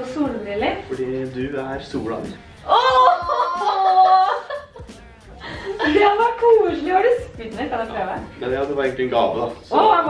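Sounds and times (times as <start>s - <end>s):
people laughing: 2.7s - 6.0s.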